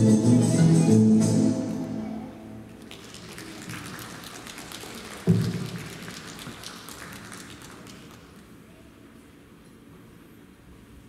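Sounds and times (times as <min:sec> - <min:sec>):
audience applause: 0:02.7 - 0:08.6.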